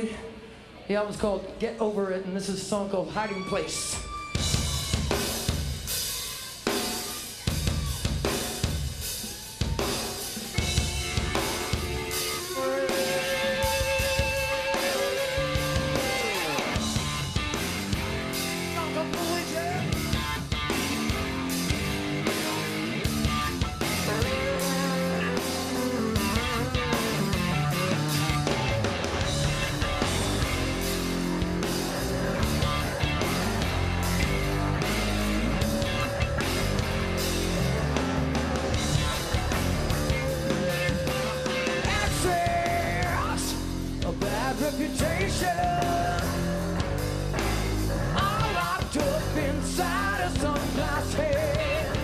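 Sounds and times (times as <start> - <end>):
rock band playing: 2.4 - 52.0
electric guitar: 10.4 - 52.0
bass guitar: 10.5 - 52.0.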